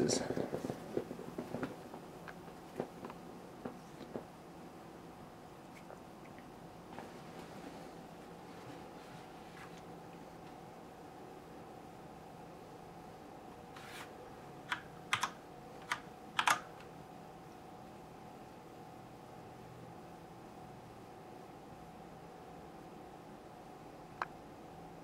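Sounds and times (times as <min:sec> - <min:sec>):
keyboard key clicks: 0:14.7 - 0:16.7.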